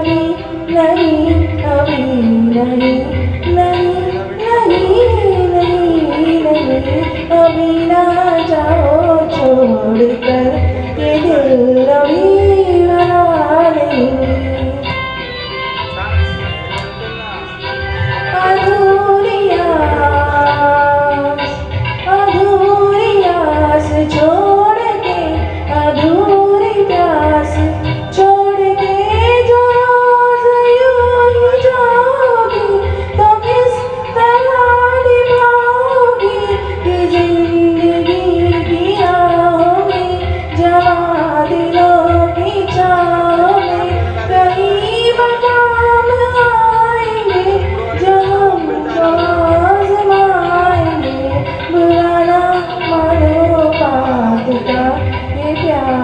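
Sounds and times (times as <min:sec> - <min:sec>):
woman singing into microphone: 0:00.0 - 0:15.7, 0:18.0 - 0:56.0
instrumental accompaniment: 0:00.0 - 0:56.0.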